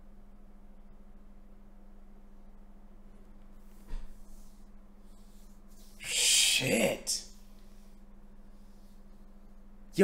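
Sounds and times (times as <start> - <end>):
faint steady hum: 0.0 - 10.0
man's breathy hooting exclamation: 6.0 - 7.2.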